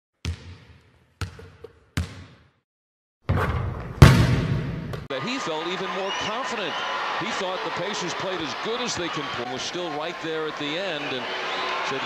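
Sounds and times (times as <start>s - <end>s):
basketball bouncing: 0.2s - 2.5s, 3.3s - 5.1s.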